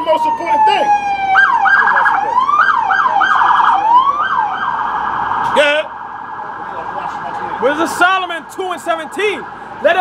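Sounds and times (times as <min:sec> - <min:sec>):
emergency vehicle siren: 0:00.0 - 0:10.0.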